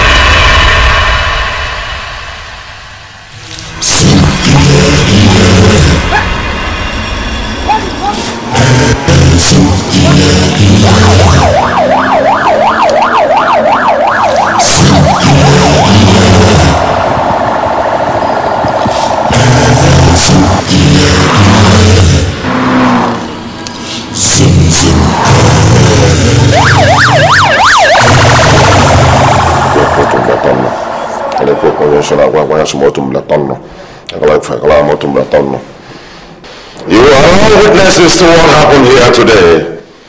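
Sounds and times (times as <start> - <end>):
music with heavy bass: 3.3 - 13.0, 14.2 - 17.8, 18.6 - 22.4
siren yelping: 4.3 - 8.6, 9.8 - 20.0, 26.0 - 32.4.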